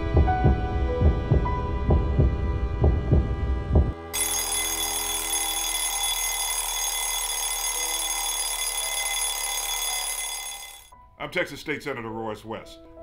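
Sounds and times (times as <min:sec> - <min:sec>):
alarm clock ringing: 0:04.1 - 0:11.0.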